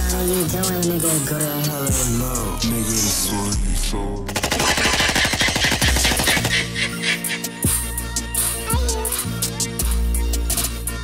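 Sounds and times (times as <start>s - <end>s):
hip-hop track with low bass: 0.0s - 11.0s
machine-gun fire: 4.3s - 6.8s.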